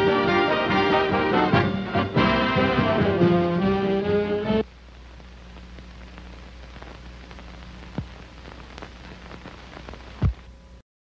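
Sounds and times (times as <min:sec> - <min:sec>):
film soundtrack hiss and hum: 0:00.0 - 0:10.8
crackles and pops: 0:04.6 - 0:10.8.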